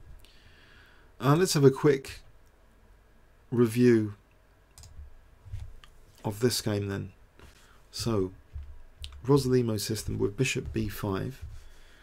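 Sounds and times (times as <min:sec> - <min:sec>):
computer mouse clicks: 0:04.7 - 0:05.1.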